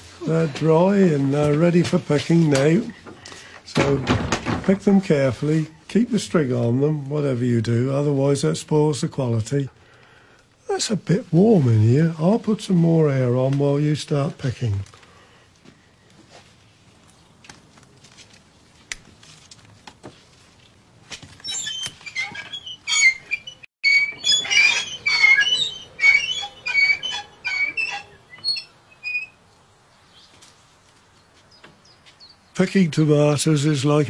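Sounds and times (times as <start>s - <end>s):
small birds chirping: 21.4s - 32.7s.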